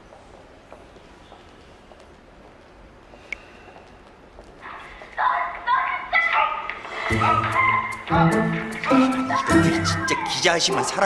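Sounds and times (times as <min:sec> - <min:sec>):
faint footsteps: 0:00.0 - 0:09.9
music: 0:06.9 - 0:11.0.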